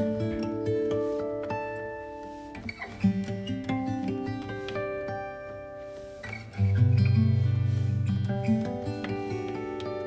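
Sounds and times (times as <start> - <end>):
plucked guitar music: 0.0 - 10.0.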